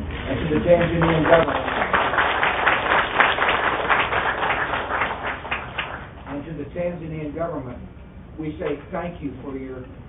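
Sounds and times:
audience applauding: 0.5s - 6.3s.

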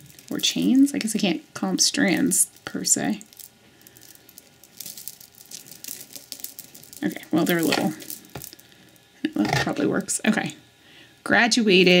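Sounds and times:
necklace beads clinking: 0.0s - 9.8s.

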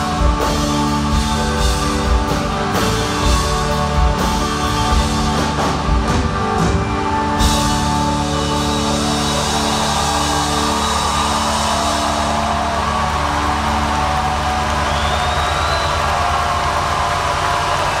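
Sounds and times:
audience cheering: 8.0s - 18.0s
rising whistle: 9.3s - 18.0s.

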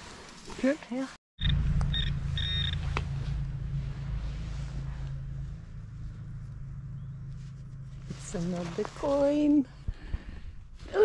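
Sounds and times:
metal detector beeps: 1.4s - 2.8s
low rumble: 1.4s - 11.0s.

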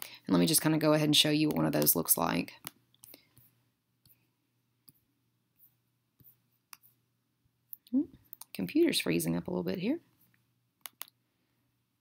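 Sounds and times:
computer mouse clicks: 10.8s - 11.2s.

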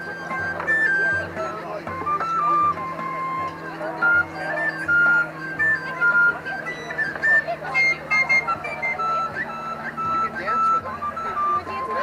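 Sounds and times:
crowd chatter: 0.0s - 12.0s
flute-like melody: 0.0s - 12.0s.

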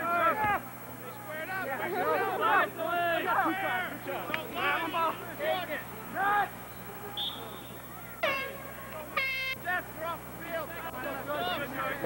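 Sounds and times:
people shouting: 0.0s - 12.0s.

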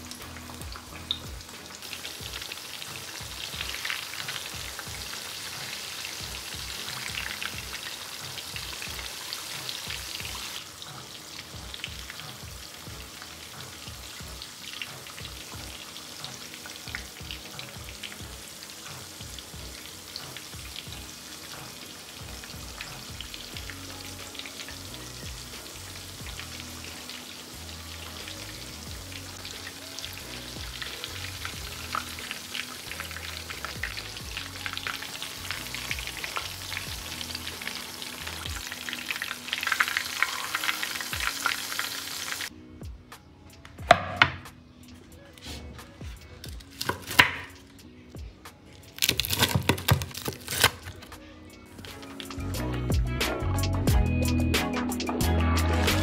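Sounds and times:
chicken deep-frying in oil: 0.0s - 42.5s, 48.9s - 51.0s.

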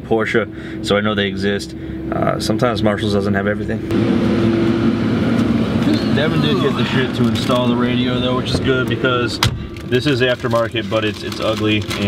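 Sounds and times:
car engine idling: 0.4s - 12.0s.

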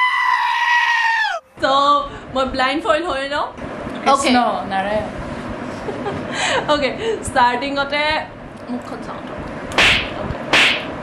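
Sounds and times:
whip-like hits with hiss: 9.8s - 11.0s.

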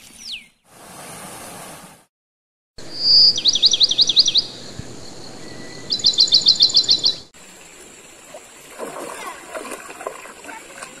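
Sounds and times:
bird singing high notes: 2.8s - 7.3s
water lapping and splashing: 7.4s - 11.0s.

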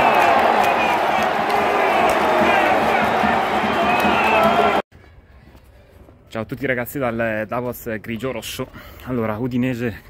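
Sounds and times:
stadium crowd shouting and singing: 0.0s - 4.8s.

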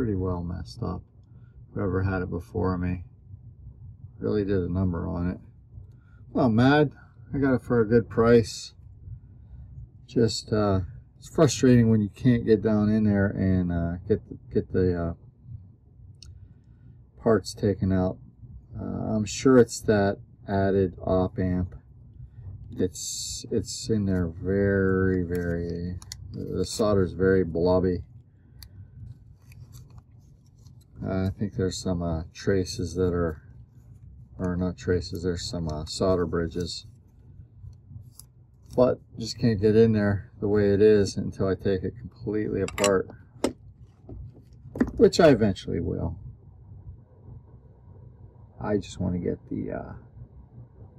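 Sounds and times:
low steady hum: 0.0s - 50.9s
rubbing of small objects: 22.8s - 41.2s.

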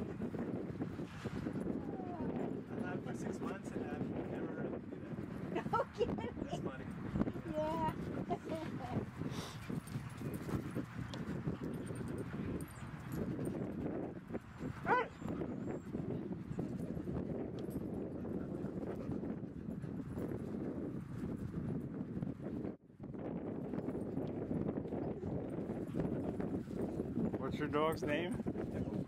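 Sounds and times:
dog yelping: 14.8s - 15.2s.

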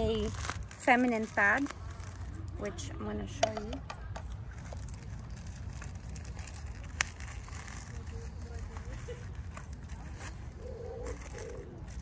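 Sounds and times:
plastic wrapper crinkling: 0.0s - 2.8s, 4.4s - 12.0s.

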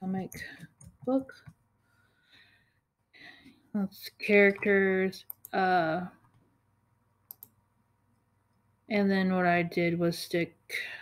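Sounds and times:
person speaking: 0.0s - 1.5s, 3.7s - 6.2s
computer mouse clicks: 4.5s - 5.6s, 7.3s - 7.6s.

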